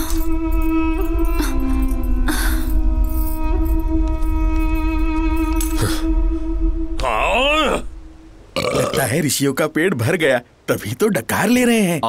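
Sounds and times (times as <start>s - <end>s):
drawn-out voiced burp: 8.6s - 9.0s.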